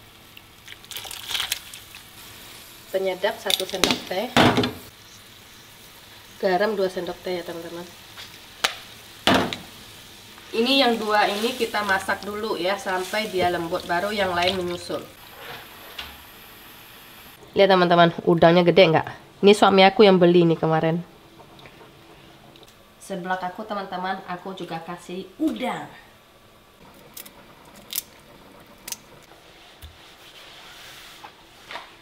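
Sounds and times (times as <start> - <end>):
broth hissing in a wok: 1.5 - 17.4.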